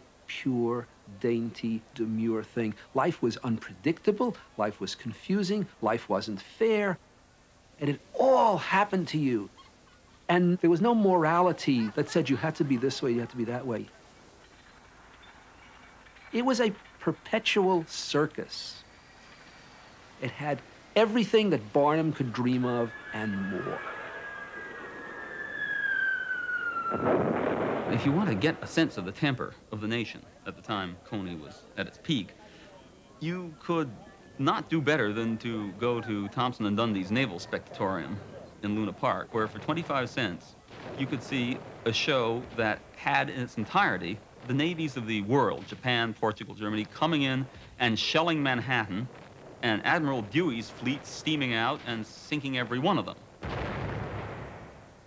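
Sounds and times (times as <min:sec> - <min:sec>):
heavy gunfire blast: 0:17.8 - 0:29.4, 0:39.5 - 0:45.9, 0:47.4 - 0:55.0
high tone sliding down in pitch: 0:22.4 - 0:27.1.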